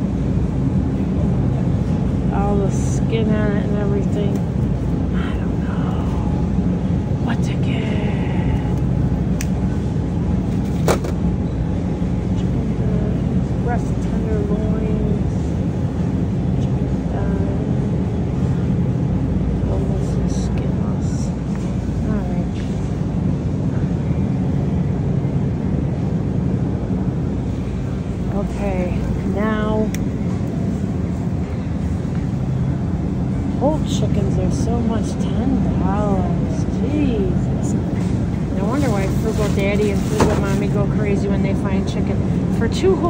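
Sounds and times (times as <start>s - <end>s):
faint voices of shoppers: 0.0s - 43.0s
refrigerator hum: 0.0s - 43.0s.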